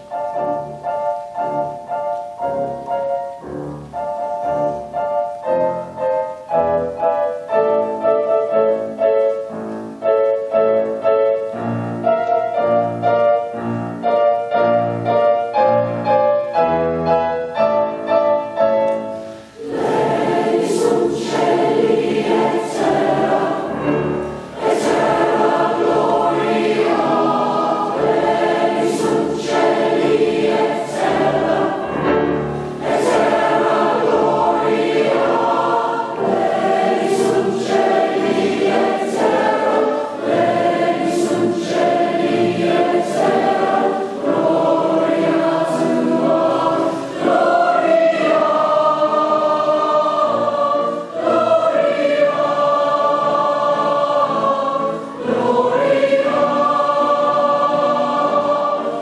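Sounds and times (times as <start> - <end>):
mixed choir singing: 0.0 - 3.3, 10.5 - 59.0
grand piano: 0.0 - 59.0.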